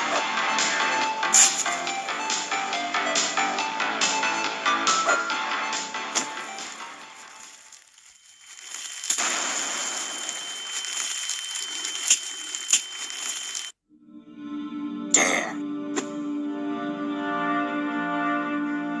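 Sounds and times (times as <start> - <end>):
sharp cracks: 6.2 - 13.7
high ringing tone: 7.4 - 13.8
cartoon explosion blast: 9.1 - 12.2
music with held notes: 14.0 - 19.0.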